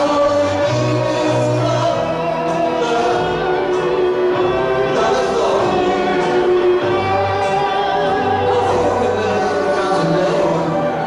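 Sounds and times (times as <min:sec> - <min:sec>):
live rock band music: 0:00.0 - 0:11.0.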